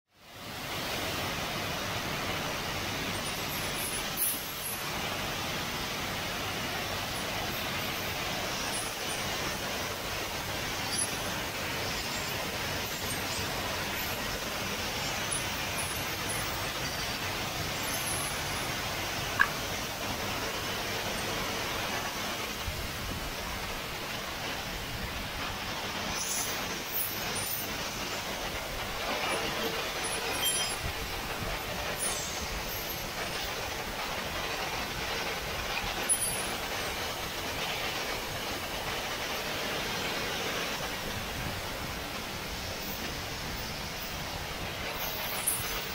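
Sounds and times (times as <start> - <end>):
gas burner flames hissing: 0.2 - 45.9.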